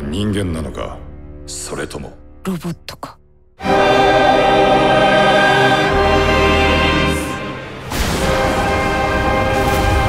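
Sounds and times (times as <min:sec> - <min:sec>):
choir holding a chord: 0:03.6 - 0:10.0.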